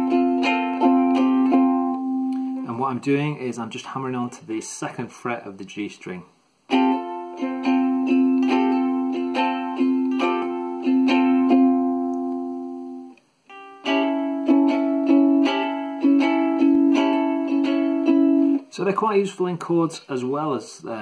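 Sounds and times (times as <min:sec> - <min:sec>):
ukulele strumming chords: 0:00.0 - 0:03.3, 0:06.7 - 0:19.9.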